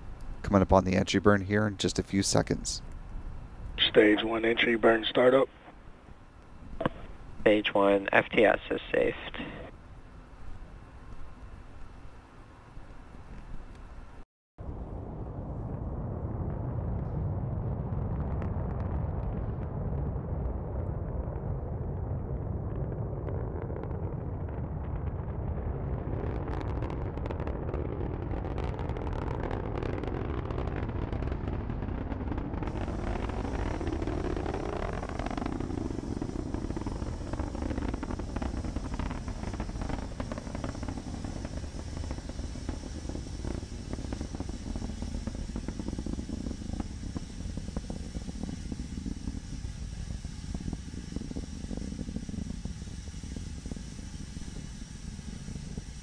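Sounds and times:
harsh crackling: 0.0s - 9.8s, 14.9s - 56.0s
rocket roar rumbling: 0.0s - 56.0s.

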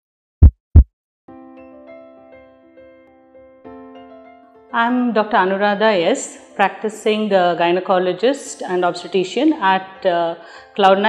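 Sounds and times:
heartbeat thump: 0.4s - 0.9s
soft keyboard music: 1.3s - 7.5s.

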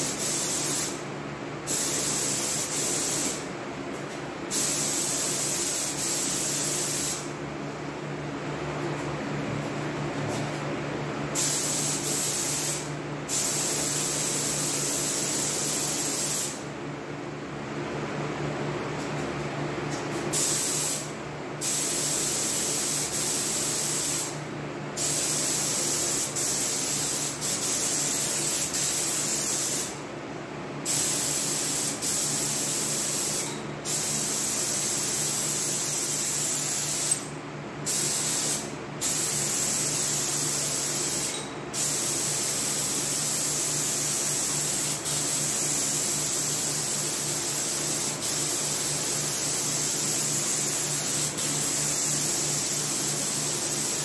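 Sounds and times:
spray gun hissing: 0.0s - 1.0s, 1.7s - 3.4s, 4.5s - 7.3s, 11.4s - 16.6s, 20.3s - 24.3s, 25.0s - 30.0s, 30.9s - 37.2s, 37.9s - 54.0s.

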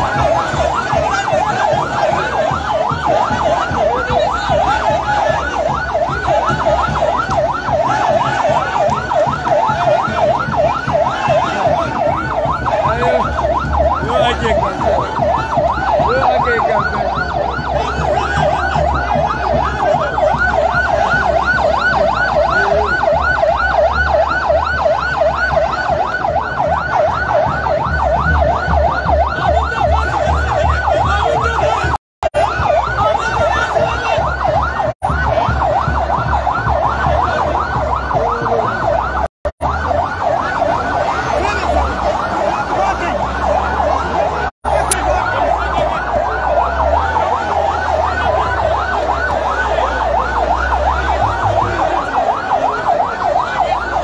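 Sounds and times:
sirens yelping: 0.0s - 54.0s.

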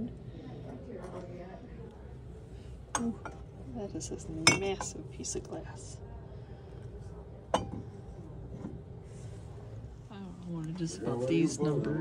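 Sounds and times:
woman speaking: 10.1s - 12.0s.

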